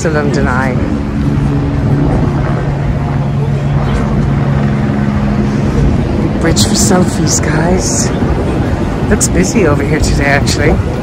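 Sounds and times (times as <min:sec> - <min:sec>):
low two-tone mechanical hum: 0:00.0 - 0:11.0.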